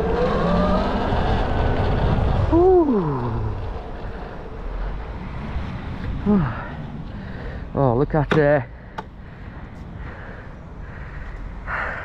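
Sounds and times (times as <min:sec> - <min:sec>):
low microphone rumble: 0:00.0 - 0:07.7
person breathing hard: 0:06.3 - 0:07.7, 0:08.7 - 0:12.0.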